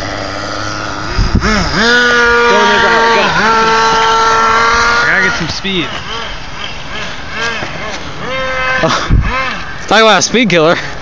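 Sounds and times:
small engine revving: 0:00.0 - 0:09.9.

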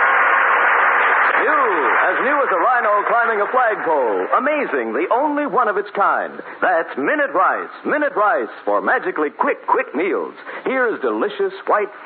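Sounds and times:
radio music with held notes: 0:00.0 - 0:12.0
man speaking: 0:01.4 - 0:12.0.

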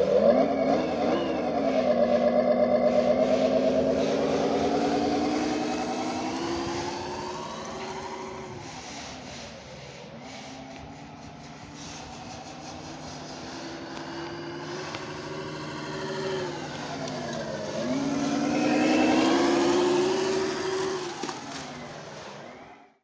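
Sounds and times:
simulated truck engine through speaker: 0:00.0 - 0:23.0.

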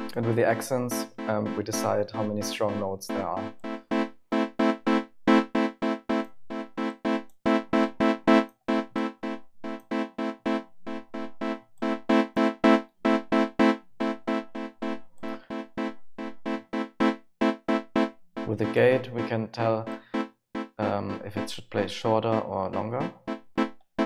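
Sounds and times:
synth chord stabs: 0:11.4 - 0:23.7.

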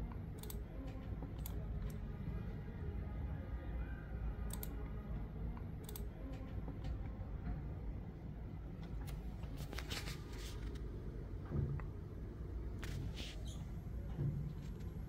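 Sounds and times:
steady low hum: 0:00.0 - 0:15.0
sharp clicks: 0:00.1 - 0:02.0, 0:04.5 - 0:04.8.

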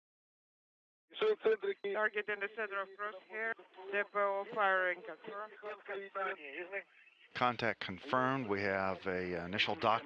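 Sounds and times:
man talking over radio: 0:01.2 - 0:10.0.

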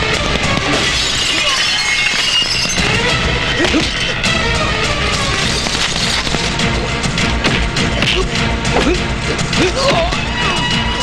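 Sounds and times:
action film music: 0:00.0 - 0:11.0
glass shattering: 0:00.7 - 0:03.0.

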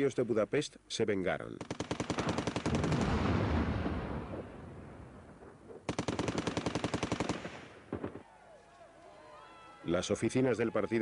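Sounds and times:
machine-gun fire: 0:01.6 - 0:03.9, 0:05.9 - 0:08.2.

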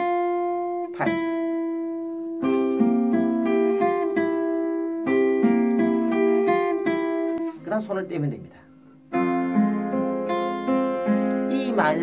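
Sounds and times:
acoustic guitar fingerpicked: 0:00.0 - 0:12.0.

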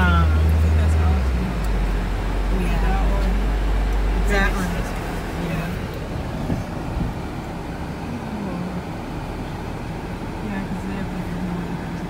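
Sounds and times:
car engine rumble: 0:00.0 - 0:12.0
tyres on road: 0:00.0 - 0:12.0.

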